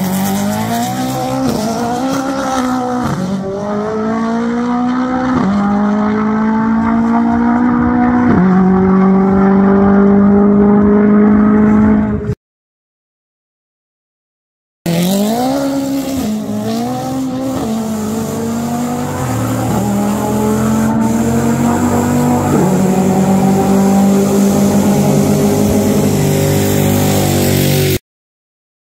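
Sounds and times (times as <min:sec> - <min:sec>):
car engine accelerating hard: 0:00.0 - 0:12.3, 0:14.9 - 0:28.0.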